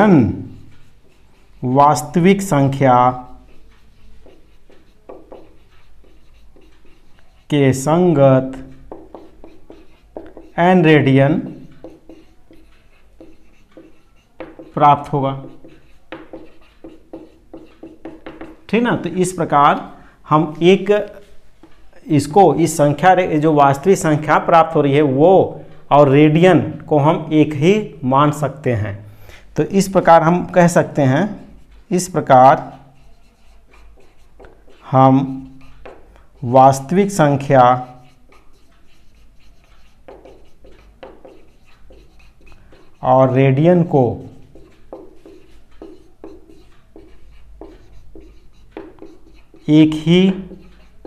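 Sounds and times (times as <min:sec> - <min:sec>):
marker scratching on whiteboard: 0:00.0 - 0:51.0.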